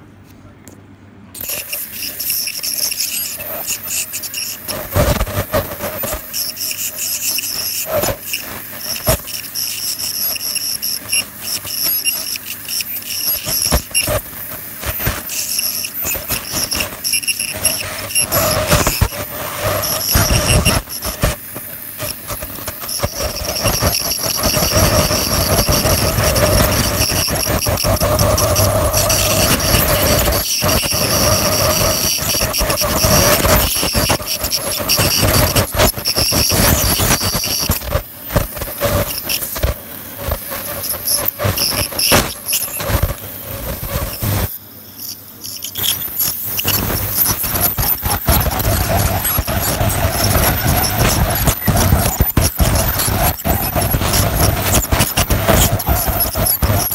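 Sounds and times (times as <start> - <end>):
dental scaler whine: 1.4 - 56.9
scaler tip clicking and scraping: 1.4 - 56.9.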